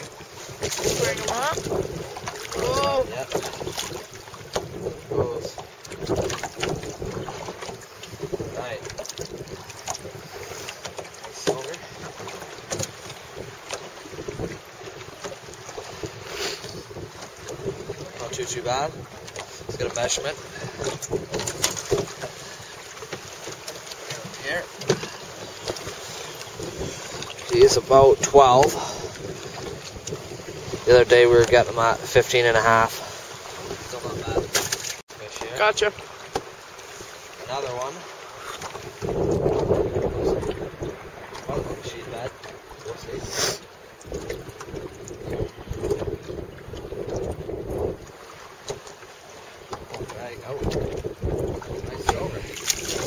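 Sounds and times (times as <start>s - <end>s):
wind buffeting microphone: 0.0s - 36.3s, 37.7s - 53.0s
water lapping against boat: 0.0s - 53.0s.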